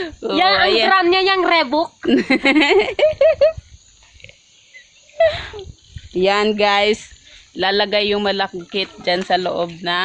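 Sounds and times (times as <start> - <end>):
person laughing: 2.1 - 3.6, 5.2 - 5.7.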